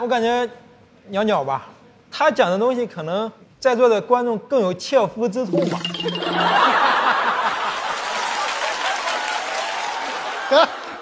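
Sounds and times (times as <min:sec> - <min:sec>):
audience applauding: 0:05.9 - 0:11.0.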